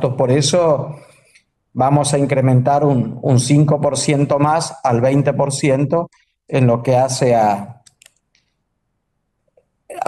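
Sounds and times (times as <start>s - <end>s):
man speaking: 0.0s - 7.9s.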